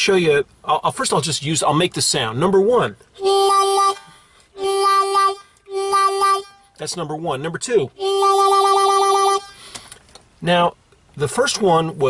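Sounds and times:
harmonica wah notes: 3.2 - 6.7, 8.0 - 9.7.

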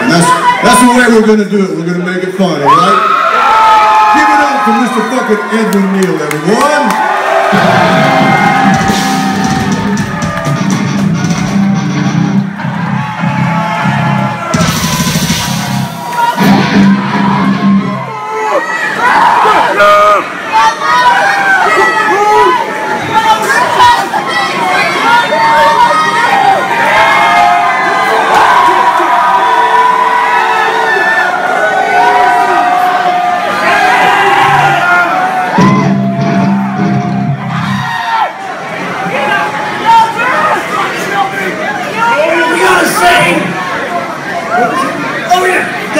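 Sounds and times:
crowd cheering and yelling: 0.0 - 45.9
metal band distorted guitar chords: 7.6 - 18.1, 35.6 - 37.8.

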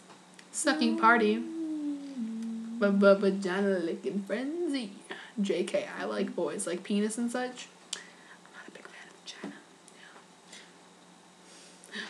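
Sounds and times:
low room hum: 0.0 - 12.0
person whispering: 0.6 - 3.2.

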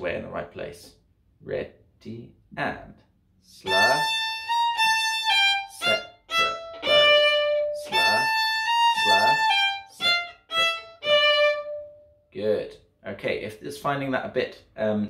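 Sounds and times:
violin phrase: 3.4 - 12.6.

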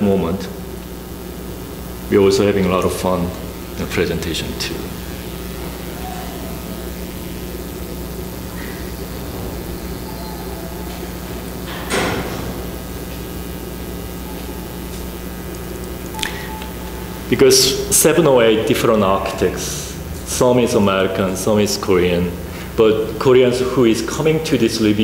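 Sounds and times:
low room hum: 0.0 - 25.0.

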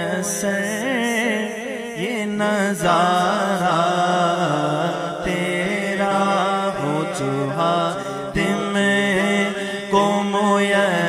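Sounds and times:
man singing devotional song: 0.0 - 11.0.

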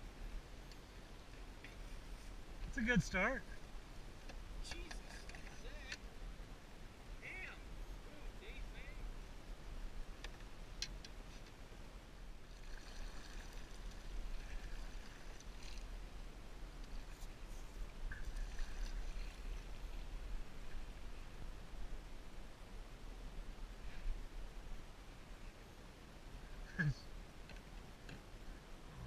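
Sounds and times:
water lapping against boat hull: 12.4 - 16.2, 16.8 - 20.1.

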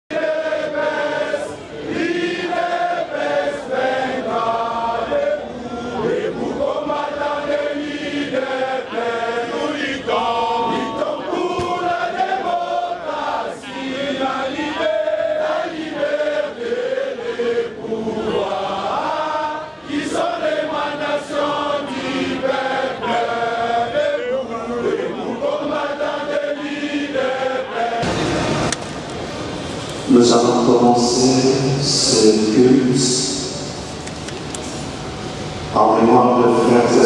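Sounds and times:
crowd chanting: 0.1 - 28.8.

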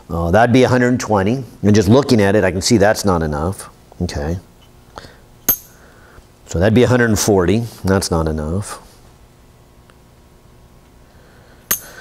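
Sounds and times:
metallic clink with ring: 5.4 - 5.8, 11.7 - 12.0.

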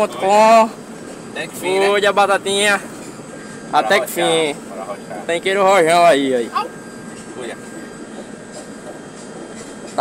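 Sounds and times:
truck engine and road noise: 0.0 - 10.0.

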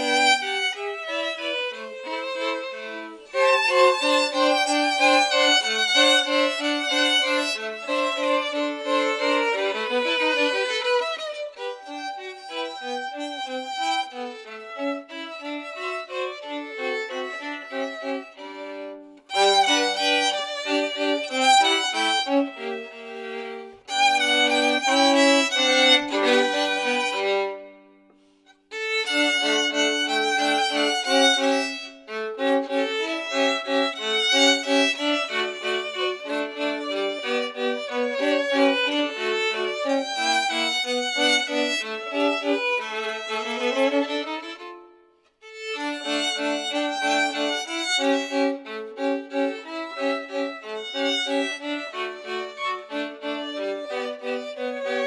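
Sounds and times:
two violins playing a duet: 0.0 - 55.0.

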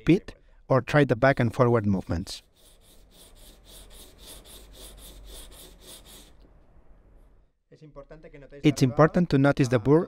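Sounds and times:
knife blade scraping on sandpaper: 2.0 - 6.3.

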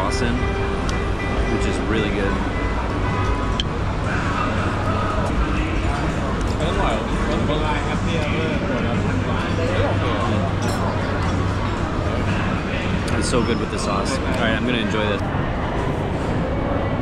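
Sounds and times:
chatter of many diners: 0.0 - 17.0.

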